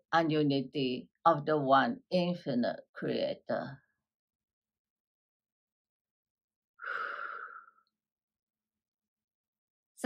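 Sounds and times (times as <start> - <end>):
woman sighing: 6.8 - 7.8.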